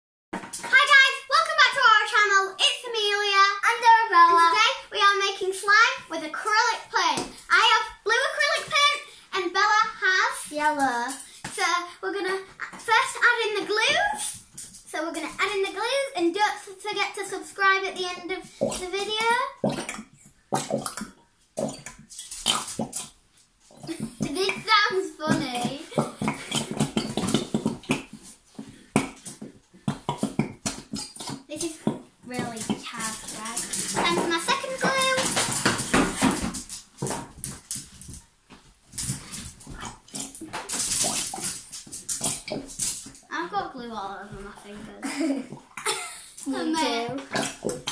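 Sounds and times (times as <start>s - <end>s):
glue bottles spluttering and squelching: 0.4s - 47.9s.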